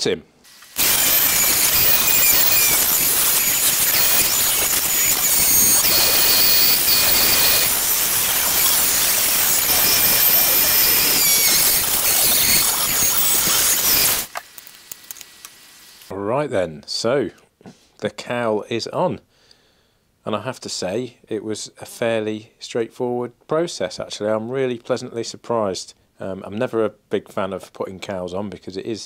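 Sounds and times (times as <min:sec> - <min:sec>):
rotary tool grinding: 0:00.6 - 0:16.1.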